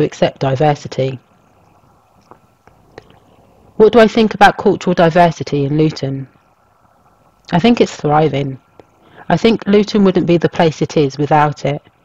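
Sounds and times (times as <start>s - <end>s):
person speaking: 0.0s - 1.3s, 3.8s - 6.4s, 7.4s - 12.0s
faint steady hum: 0.0s - 12.0s.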